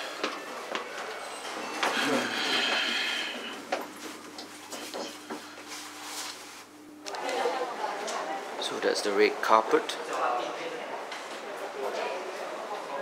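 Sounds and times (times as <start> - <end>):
lift running noise: 0.0 - 8.7.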